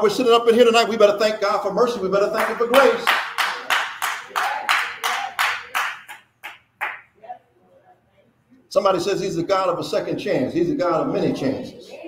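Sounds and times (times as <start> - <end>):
hand clapping in rhythm: 2.4 - 7.2.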